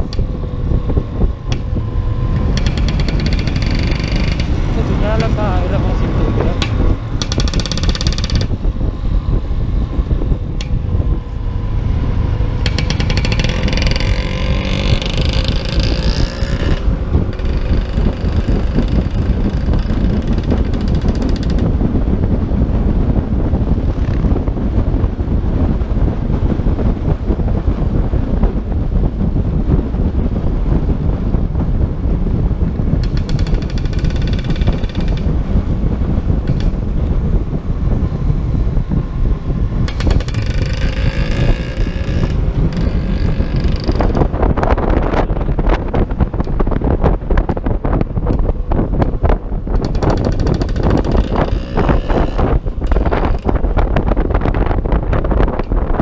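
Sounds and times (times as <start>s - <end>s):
scooter engine running: 0.0s - 25.8s, 32.6s - 45.2s, 48.3s - 54.1s
high engine whine: 0.0s - 56.0s
wind rushing over microphone: 0.0s - 56.0s.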